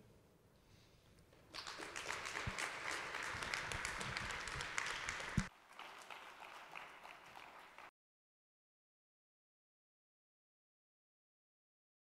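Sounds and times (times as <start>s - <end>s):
audience applauding: 1.5s - 7.9s.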